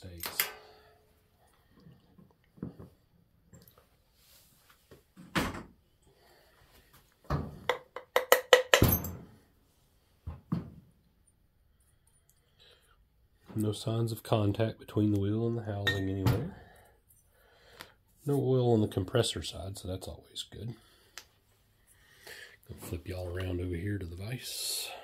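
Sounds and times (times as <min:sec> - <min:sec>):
light clinks of metal parts: 0:00.0 - 0:00.9.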